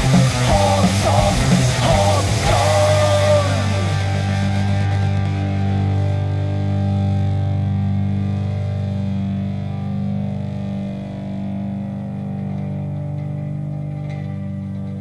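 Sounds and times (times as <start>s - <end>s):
bass guitar: 0.0s - 15.0s
distorted electric guitar chord: 0.0s - 15.0s.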